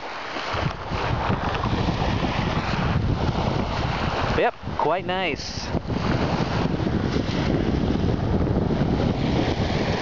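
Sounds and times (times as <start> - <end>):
small waves lapping pebble shore: 0.0 - 7.5
wind buffeting microphone: 0.0 - 10.0.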